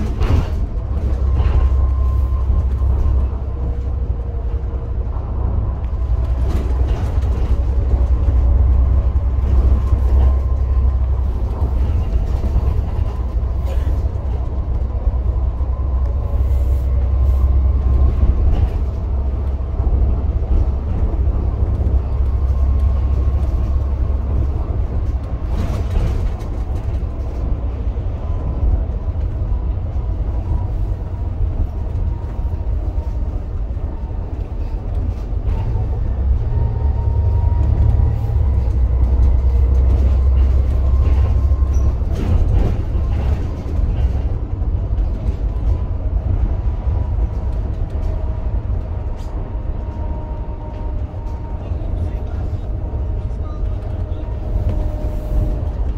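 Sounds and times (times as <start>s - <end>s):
bus diesel engine droning: 0.0s - 55.9s.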